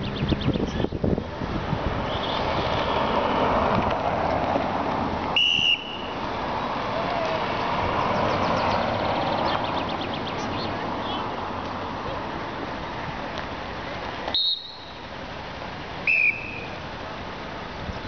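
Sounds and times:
car road noise: 0.0 - 18.0
sharp whistle blast: 5.4 - 6.2, 14.3 - 15.0, 16.0 - 16.7.

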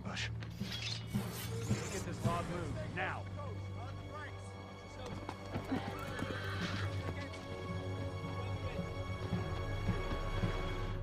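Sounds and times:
orchestral underscore: 1.1 - 11.0
hooves clattering: 4.8 - 8.1
horses whinnying: 5.5 - 7.2.

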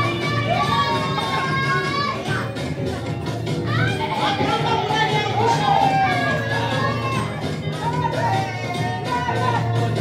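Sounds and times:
gospel music with singing: 0.0 - 10.0.

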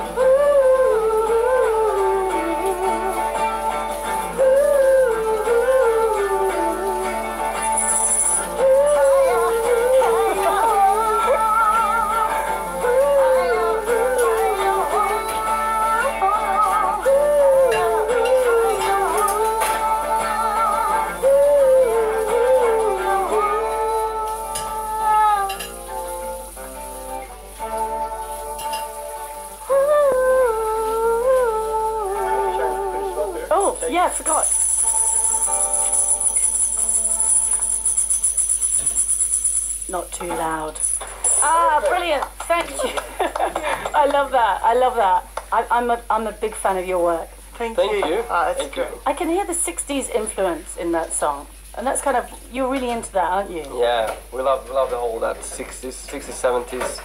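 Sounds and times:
small band playing live: 0.0 - 40.1
guitar chords: 0.0 - 45.6.

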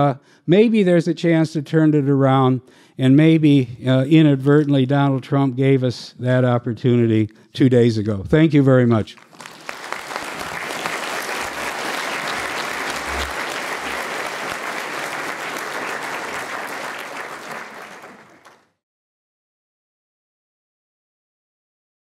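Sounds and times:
audience applauding: 9.2 - 18.8.

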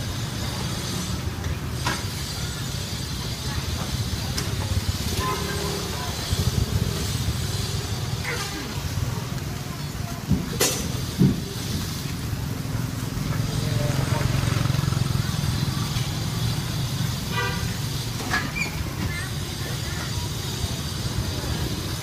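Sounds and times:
traffic rumble: 0.0 - 22.0
vehicle horn toot: 5.1 - 5.7, 17.3 - 17.8.

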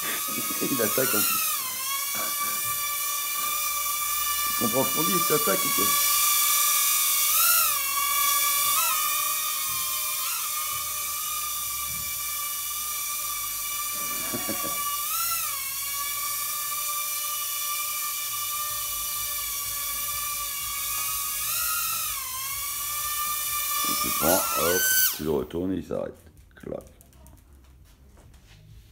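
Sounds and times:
drone motors whining: 0.0 - 25.4.

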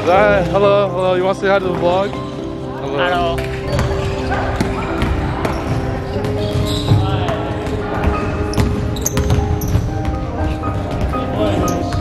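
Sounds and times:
voices in a large hall: 0.0 - 12.0
basketball bouncing on hardwood: 3.7 - 10.2.

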